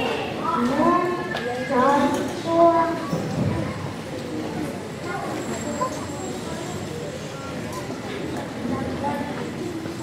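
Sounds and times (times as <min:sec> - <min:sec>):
faint children's voices: 0:00.0 - 0:10.0
steady background noise: 0:00.0 - 0:10.0.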